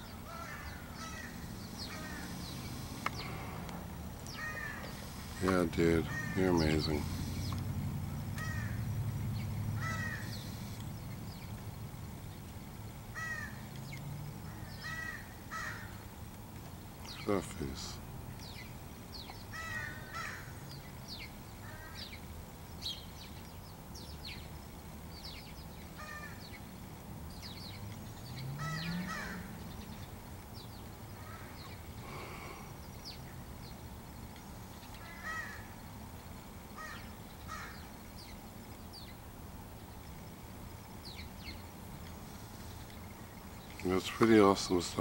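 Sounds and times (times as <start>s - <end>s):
bird calls and chirps: 0.0s - 12.6s, 17.0s - 35.8s, 36.7s - 39.3s, 39.9s - 45.0s
low background rumble: 0.0s - 44.0s.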